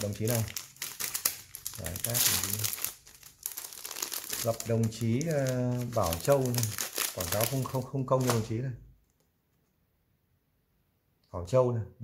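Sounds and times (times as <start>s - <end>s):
plastic packaging crinkling: 0.0s - 9.2s.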